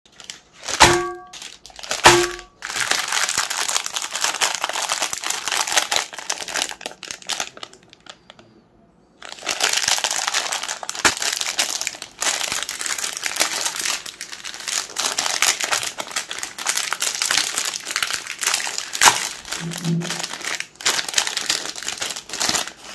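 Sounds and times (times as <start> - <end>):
plastic wrappers crinkling: 0.1 - 8.5, 9.2 - 22.9.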